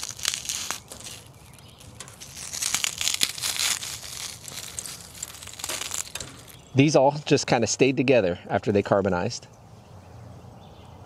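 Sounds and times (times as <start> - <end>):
charcoal crumbling between fingers: 0.0 - 6.8.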